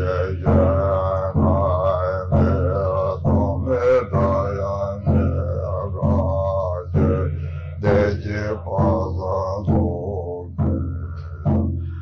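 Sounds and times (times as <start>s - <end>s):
deep male voice chanting: 0.0s - 12.0s.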